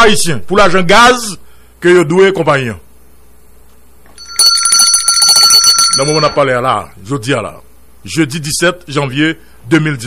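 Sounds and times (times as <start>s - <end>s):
bell-like trilling ring: 4.2s - 6.6s.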